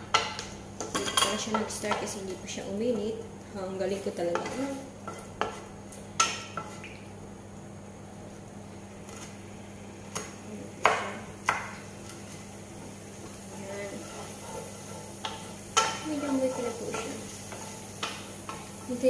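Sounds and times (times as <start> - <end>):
spatula stirring garlic in oil: 4.2 - 6.8, 11.4 - 19.0
spatula knocking against pan: 14.0 - 18.7.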